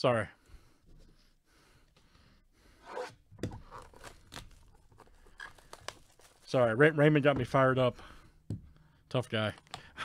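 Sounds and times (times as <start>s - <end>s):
plastic shrink wrap tearing: 3.8s - 6.6s.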